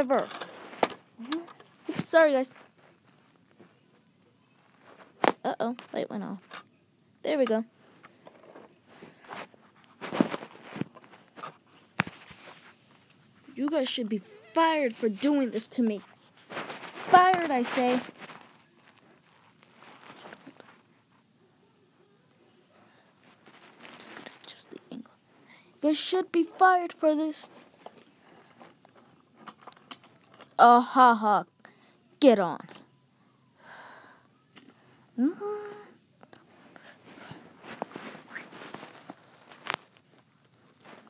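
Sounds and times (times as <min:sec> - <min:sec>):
soft handling rustling: 0:00.0 - 0:06.7, 0:07.3 - 0:25.6, 0:36.4 - 0:41.0.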